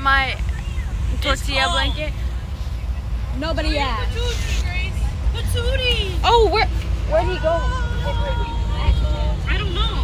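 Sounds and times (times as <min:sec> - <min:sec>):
bus engine and road rumble: 0:00.0 - 0:10.0
girls chattering: 0:00.0 - 0:10.0.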